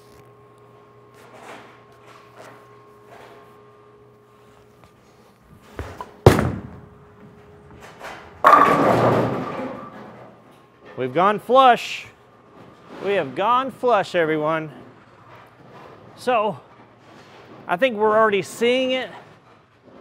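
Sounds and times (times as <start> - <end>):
bowling ball rolling: 5.6 - 10.6
bowling pins crashing: 5.7 - 7.0, 7.8 - 10.5
bowling ball landing on lane: 5.8 - 6.9, 8.4 - 10.4.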